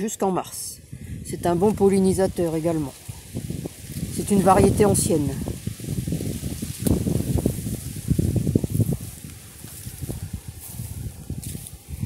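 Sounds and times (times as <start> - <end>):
leaves brushing: 1.5 - 12.0
footfalls on grass: 5.6 - 12.0.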